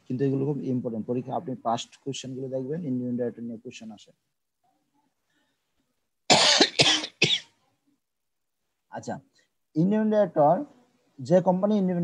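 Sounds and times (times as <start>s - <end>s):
person coughing: 6.3s - 7.5s.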